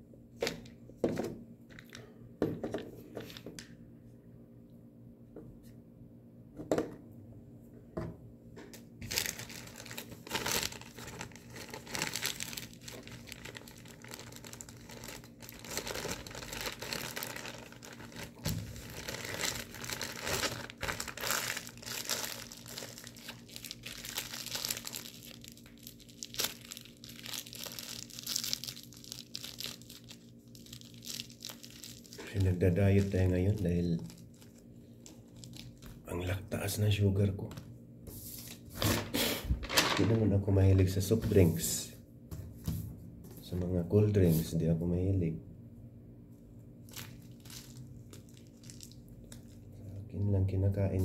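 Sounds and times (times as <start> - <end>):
plastic packaging crinkling: 9.0 - 36.1, 46.8 - 49.7.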